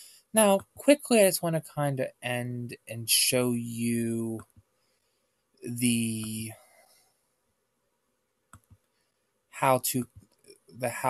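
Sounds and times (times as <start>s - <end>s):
computer mouse clicks: 8.5s - 8.9s.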